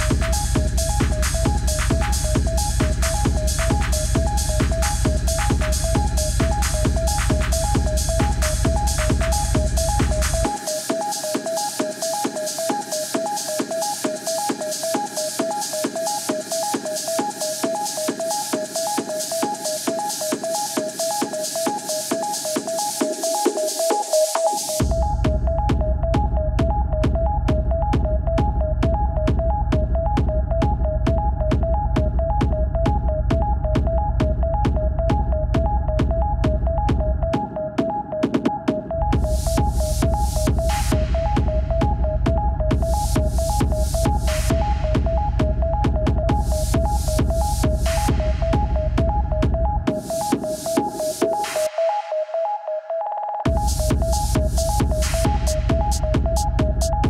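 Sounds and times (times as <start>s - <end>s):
rumbling bass: 0.0s - 10.5s
techno kick drum: 0.0s - 51.9s, 53.4s - 57.0s.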